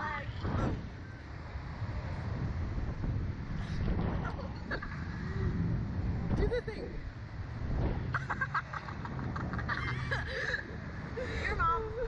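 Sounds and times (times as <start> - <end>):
wind rumbling over microphone: 0.2 - 9.7.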